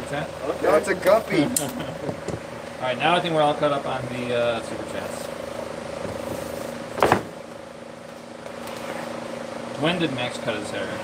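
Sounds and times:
steady machine hum: 0:00.0 - 0:11.0
loud knock: 0:07.0 - 0:07.3.

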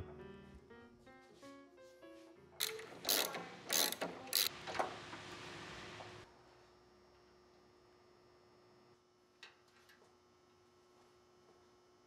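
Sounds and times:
ratchet wrench rasping: 0:02.6 - 0:04.5.

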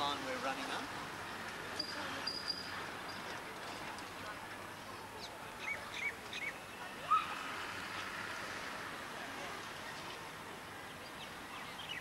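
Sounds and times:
outdoor background noise: 0:00.0 - 0:12.0
birds chirping: 0:05.2 - 0:06.8, 0:10.9 - 0:12.0.

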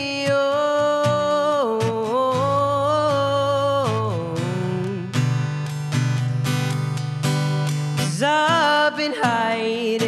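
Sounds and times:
person singing: 0:00.0 - 0:05.4, 0:08.0 - 0:10.0
acoustic guitar strumming chords: 0:00.0 - 0:10.0.

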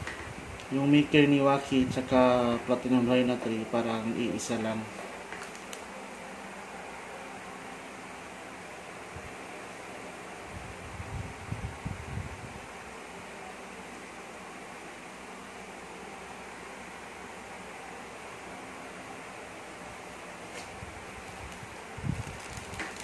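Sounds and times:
room noise hiss: 0:00.0 - 0:23.0.

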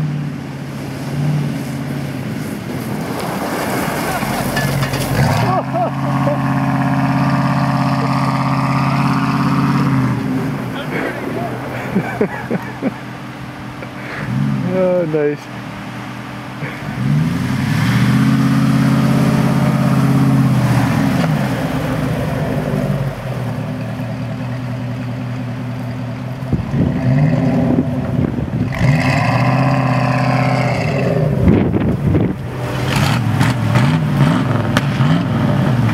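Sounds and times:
engine revving: 0:01.0 - 0:13.0, 0:13.7 - 0:24.7, 0:26.5 - 0:35.9.

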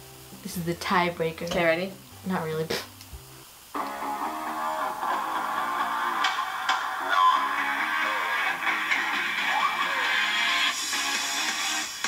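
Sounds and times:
tv theme song with guitar: 0:03.7 - 0:12.0.

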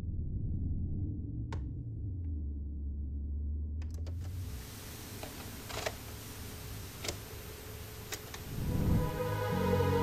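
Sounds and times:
deep low rumble: 0:00.0 - 0:04.4.

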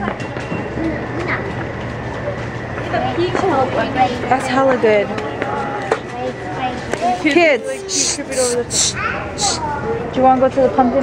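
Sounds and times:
faint indistinct voices: 0:00.0 - 0:11.0
steady low hum: 0:07.5 - 0:09.8
thin high whine: 0:07.6 - 0:09.6.

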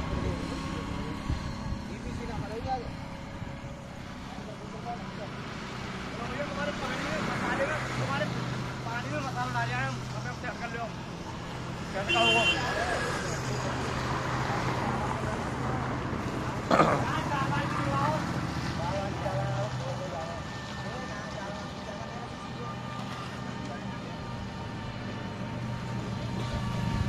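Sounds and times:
workers calling and talking: 0:00.0 - 0:27.0.

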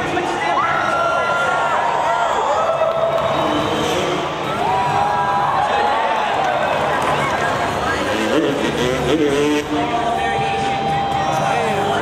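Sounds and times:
stadium crowd cheering and shouting: 0:00.0 - 0:12.0.

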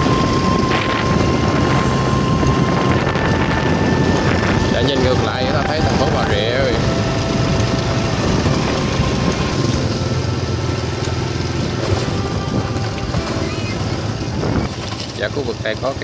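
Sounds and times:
motorbike engine humming: 0:00.0 - 0:16.0
road noise: 0:00.0 - 0:16.0
wind: 0:00.0 - 0:16.0.

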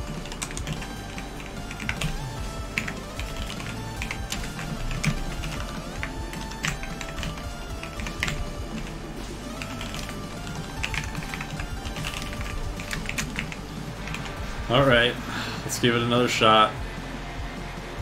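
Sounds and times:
computer keyboard typing: 0:00.0 - 0:14.4
background music: 0:00.0 - 0:18.0.

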